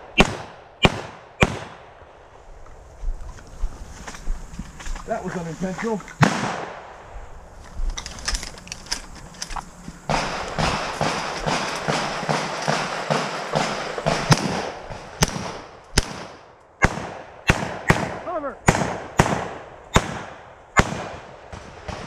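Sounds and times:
gunshots: 0.0s - 2.0s, 6.2s - 7.0s, 10.1s - 22.0s
loud shotgun shots: 0.0s - 2.0s, 6.2s - 7.0s, 10.1s - 22.0s
footsteps in dry leaves: 2.2s - 6.3s.

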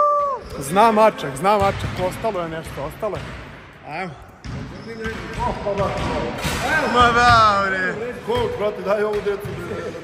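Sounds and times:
basketball bouncing on hardwood floor: 1.6s - 2.1s, 4.4s - 7.5s.

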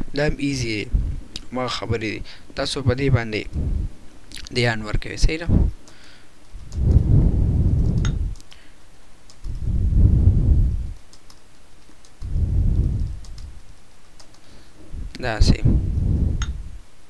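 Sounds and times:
long low rumbles: 3.5s - 4.0s, 6.6s - 8.4s, 9.5s - 11.0s, 12.2s - 13.6s, 15.0s - 16.8s
keyboard keys clicking: 10.9s - 12.3s, 13.0s - 14.4s.

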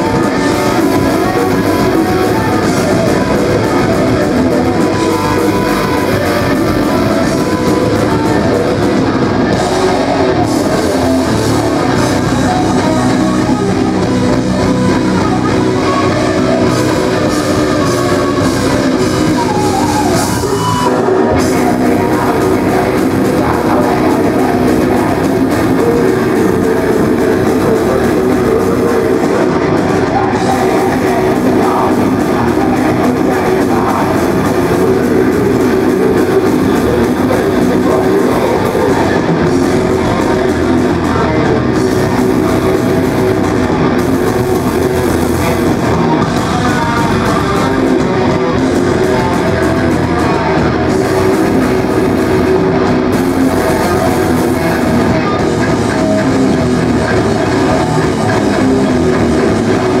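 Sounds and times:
live metal band playing: 0.0s - 60.0s.

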